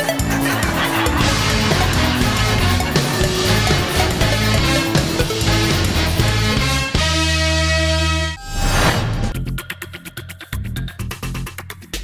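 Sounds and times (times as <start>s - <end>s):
background music with a beat: 0.0s - 8.4s, 9.3s - 12.0s.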